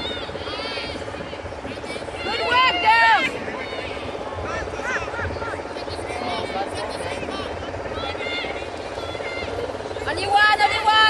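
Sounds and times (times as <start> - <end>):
steady background drone: 0.0 - 11.0
women shouting calls: 2.0 - 5.3, 6.2 - 11.0.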